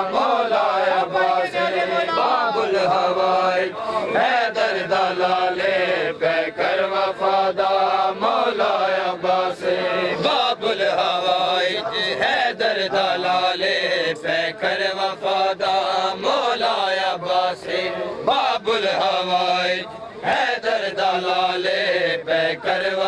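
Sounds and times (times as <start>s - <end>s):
men chanting a lament: 0.0s - 23.0s.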